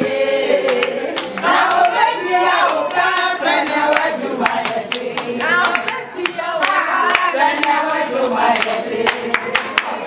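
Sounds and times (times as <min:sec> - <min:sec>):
group singing: 0:00.0 - 0:10.0
rhythmic hand clapping: 0:00.0 - 0:10.0.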